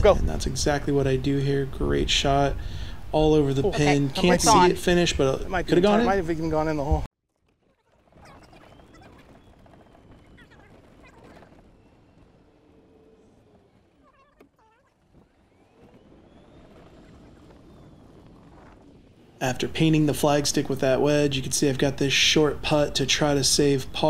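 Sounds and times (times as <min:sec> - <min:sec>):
electric cart motor whine: 0:08.4 - 0:19.4.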